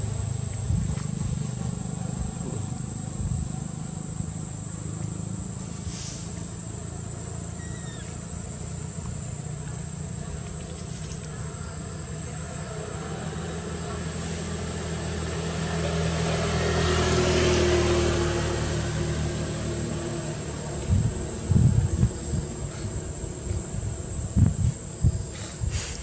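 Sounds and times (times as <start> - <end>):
high insect whine: 0.0 - 26.0
vehicle engine passing: 11.9 - 24.5.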